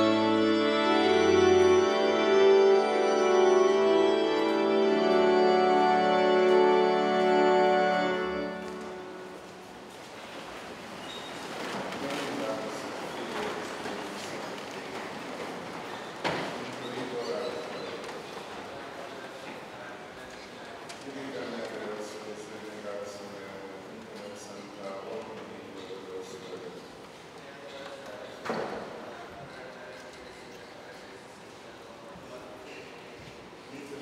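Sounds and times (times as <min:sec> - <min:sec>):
echoing church hall ambience: 0:00.0 - 0:34.0.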